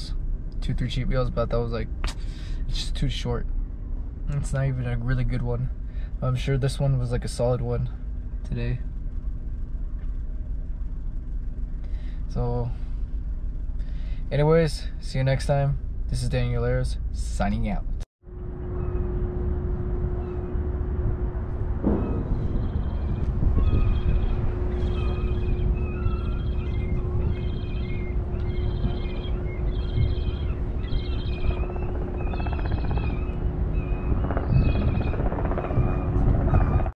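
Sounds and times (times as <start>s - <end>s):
steady hum: 0.0s - 36.8s
engine rumble: 0.0s - 37.0s
wind: 0.0s - 37.0s.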